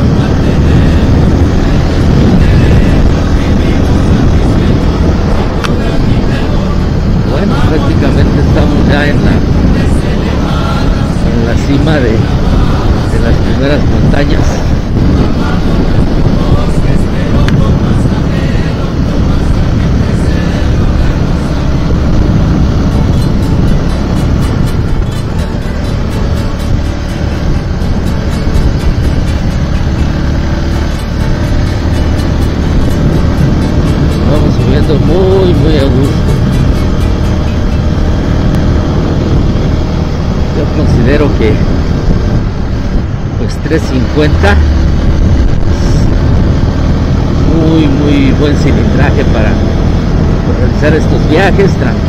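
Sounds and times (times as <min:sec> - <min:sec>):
motorcycle engine running: 0:00.0 - 0:52.0
wind rushing on microphone: 0:00.0 - 0:52.0.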